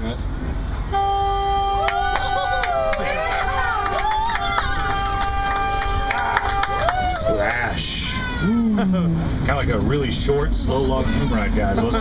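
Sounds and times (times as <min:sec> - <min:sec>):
boat horn long blast: 0:00.6 - 0:07.3
passengers cheering and shouting: 0:00.9 - 0:08.9, 0:10.7 - 0:12.0.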